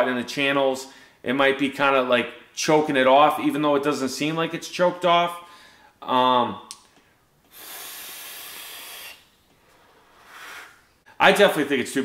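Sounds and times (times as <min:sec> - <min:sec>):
breathy exhale: 0:05.5 - 0:06.0, 0:07.5 - 0:11.0
vape drag hiss: 0:07.5 - 0:09.3.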